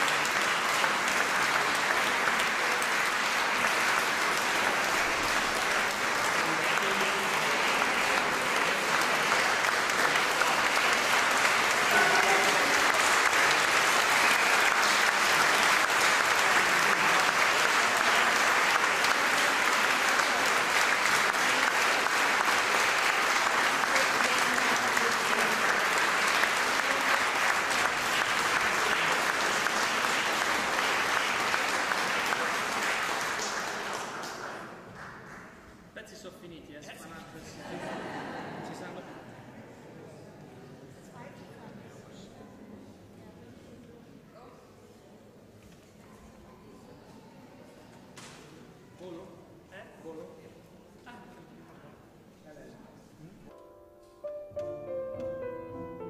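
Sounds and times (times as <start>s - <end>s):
audience applauding: 0.0s - 35.8s.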